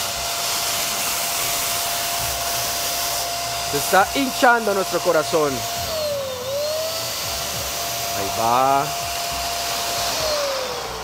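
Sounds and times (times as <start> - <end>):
electric balloon pump motor whine: 0.0 - 11.0.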